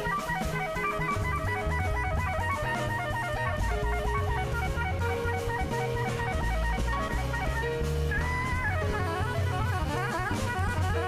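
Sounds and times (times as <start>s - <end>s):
double bass: 0.0s - 11.0s
drums: 0.0s - 11.0s
soprano saxophone run: 0.0s - 11.0s.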